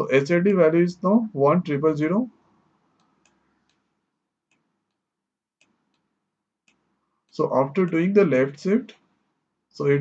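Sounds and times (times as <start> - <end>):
computer mouse clicks: 2.9 - 3.9, 4.5 - 8.1.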